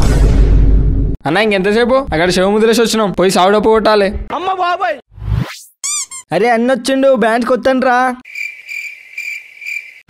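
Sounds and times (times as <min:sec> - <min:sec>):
cricket chirping: 0:08.2 - 0:10.0.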